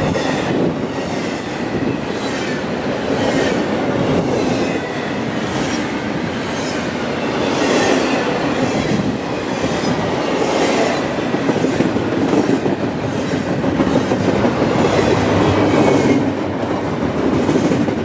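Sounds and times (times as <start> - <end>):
train wheels rumbling on rail: 0.0 - 18.0.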